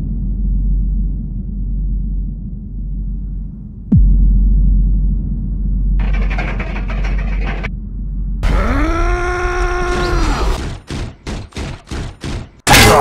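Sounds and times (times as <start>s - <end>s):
deep hit with low rumble: 0.0s - 8.9s
rising groan: 8.4s - 10.6s.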